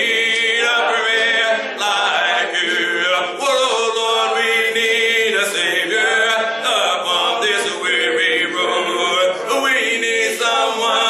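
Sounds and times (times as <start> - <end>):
man singing a hymn a cappella: 0.0 - 11.0.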